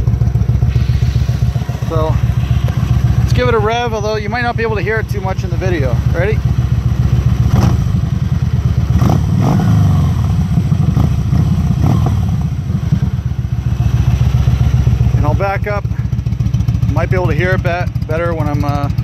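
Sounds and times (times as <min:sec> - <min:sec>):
motorcycle engine idling and revving: 0:00.0 - 0:19.0.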